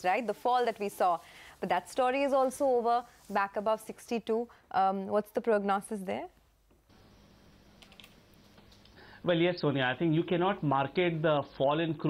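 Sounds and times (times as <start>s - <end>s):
faint line hiss: 0.0s - 4.8s, 6.3s - 11.4s.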